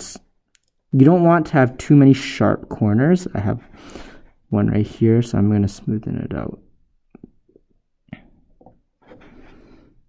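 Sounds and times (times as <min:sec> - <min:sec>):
small clicks: 0:00.5 - 0:00.9.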